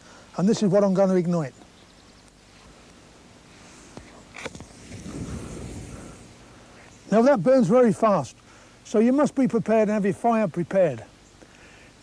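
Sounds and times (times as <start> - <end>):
powder flaring with a whoosh: 4.7 - 6.3.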